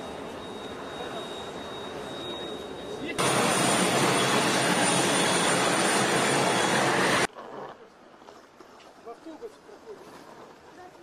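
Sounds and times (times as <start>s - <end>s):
high engine whine: 0.0s - 7.3s
jet engines roaring: 0.0s - 7.3s.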